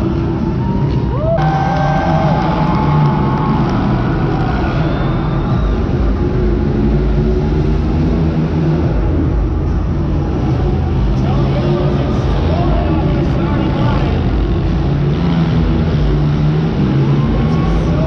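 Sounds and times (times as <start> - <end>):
monster truck engines rumbling: 0.0 - 18.0.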